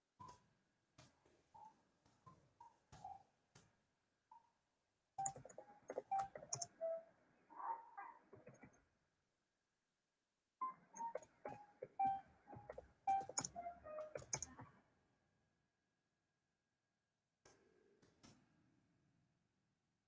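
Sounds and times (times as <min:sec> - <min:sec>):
electronic melody with clicky percussion: 0:05.2 - 0:07.0, 0:11.0 - 0:14.7.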